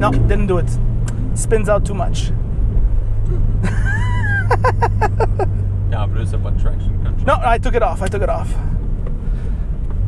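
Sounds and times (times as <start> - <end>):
car driving drone inside cabin: 0.0 - 10.0
man laughing: 3.3 - 5.6.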